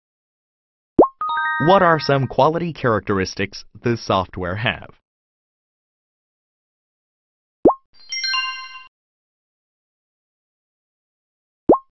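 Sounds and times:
bright bell-like chime: 1.2 - 2.4.

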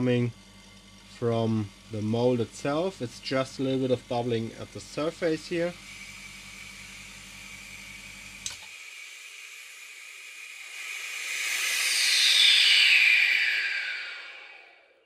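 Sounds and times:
vacuum pump pulsing hum: 0.0 - 15.0
air hissing into chamber: 5.0 - 14.9.

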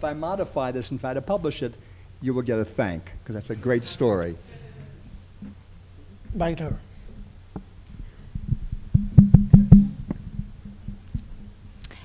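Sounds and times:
faint microphone bumps: 6.2 - 11.8
microphone handling thumps: 6.2 - 11.8.

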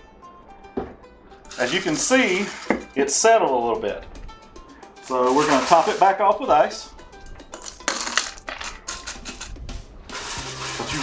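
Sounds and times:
crushed ice dropping into glass: 1.5 - 2.8, 5.1 - 6.1, 7.6 - 9.0.

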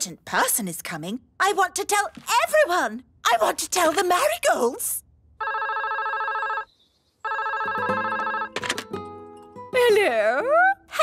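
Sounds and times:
telephone ringing: 5.4 - 9.0.

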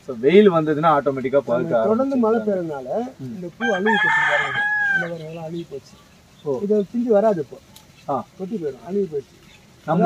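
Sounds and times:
man talking: 0.0 - 10.0
rooster crowing: 3.6 - 5.4.

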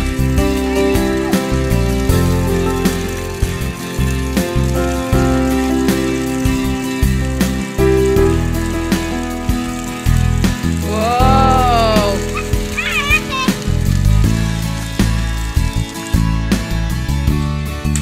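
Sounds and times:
background music with beat: 0.0 - 18.0.

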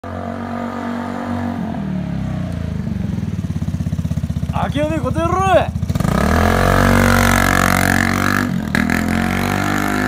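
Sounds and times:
motorcycle engine idling: 2.0 - 6.6.

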